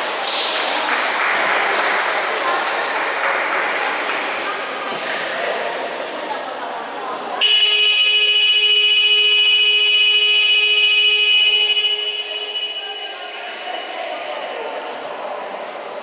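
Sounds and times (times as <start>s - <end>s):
voices in a hall: 0.0s - 16.0s
scoreboard horn blast: 7.4s - 12.8s.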